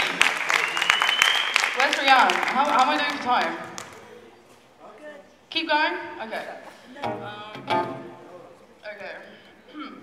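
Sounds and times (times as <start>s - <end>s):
woman's voice at microphone: 1.8s - 3.7s
acoustic guitar: 6.8s - 8.4s.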